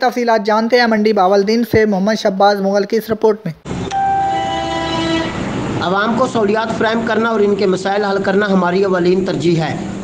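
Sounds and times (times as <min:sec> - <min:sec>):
electronic tone chord: 0:03.7 - 0:05.8.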